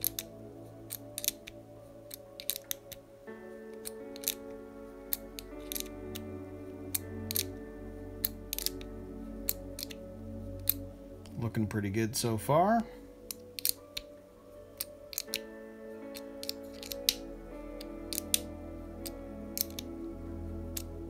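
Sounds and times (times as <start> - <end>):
soft background music: 0.0 - 21.0
wrench clicking: 2.1 - 2.8, 3.8 - 4.4, 7.3 - 7.5, 8.2 - 8.8, 13.3 - 13.8, 15.1 - 15.4, 16.1 - 17.2, 18.1 - 18.4, 19.6 - 19.8.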